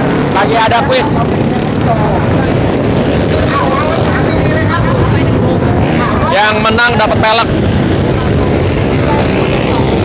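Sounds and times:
faint crowd voices: 0.0 - 10.0
motorcycle engines droning: 0.0 - 10.0.

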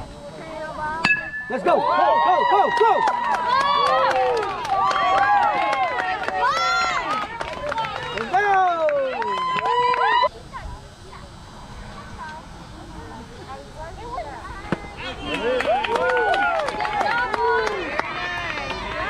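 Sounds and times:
faint distant voices: 0.0 - 19.0
crowd cheering and shouting: 1.1 - 10.3, 14.8 - 19.0.

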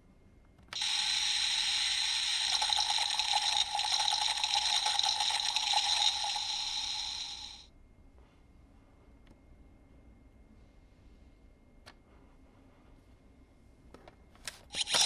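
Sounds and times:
toy belt sound effect: 0.8 - 7.6, 14.7 - 15.0.

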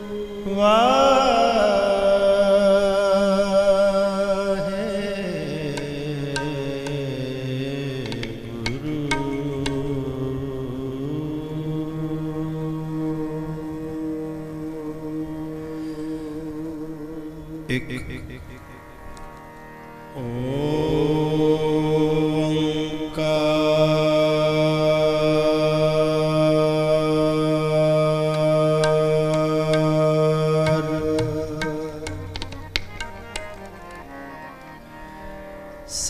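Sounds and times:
man singing long held notes: 0.0 - 18.7, 20.1 - 34.1
person chanting a sustained note: 20.1 - 31.9
instrumental drone: 28.3 - 35.6.

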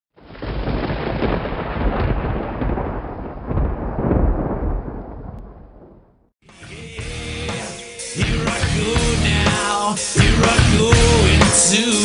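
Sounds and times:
deep rumbling noise: 0.3 - 6.3.

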